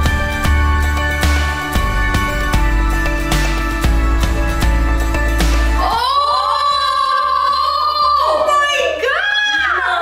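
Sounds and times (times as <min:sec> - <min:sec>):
women screaming: 0:05.8 - 0:10.0.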